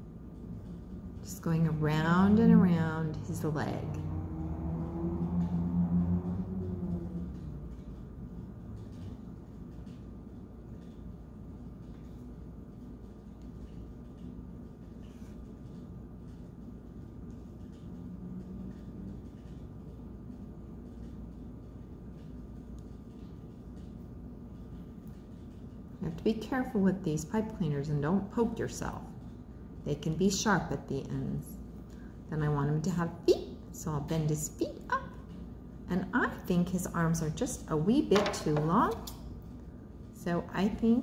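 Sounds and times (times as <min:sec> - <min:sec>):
low wavering hum: 0:00.0 - 0:26.1.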